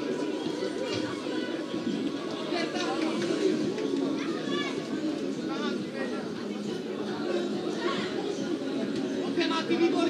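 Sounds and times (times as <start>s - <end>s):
children shouting: 0.0s - 3.0s, 4.1s - 5.0s
children chattering: 0.0s - 10.0s.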